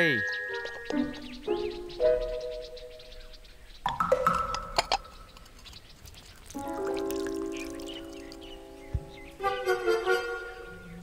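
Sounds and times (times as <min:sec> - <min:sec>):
sustained chord music: 0:00.0 - 0:03.6, 0:06.6 - 0:11.0.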